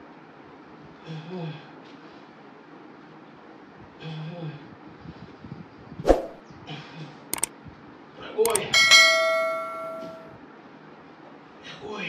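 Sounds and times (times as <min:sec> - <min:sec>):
button clicks: 0:08.5 - 0:08.7
bright bell ding: 0:08.6 - 0:10.4.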